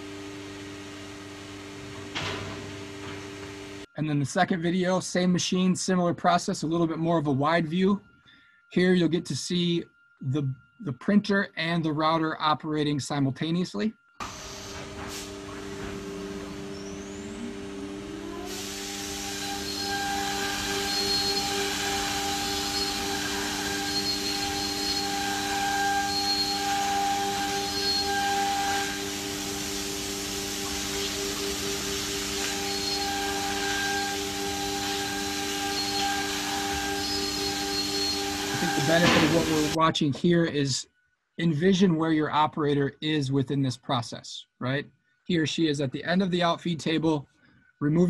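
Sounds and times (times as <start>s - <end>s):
router spindle whining: 14.2s - 39.8s
even hiss: 18.4s - 39.8s.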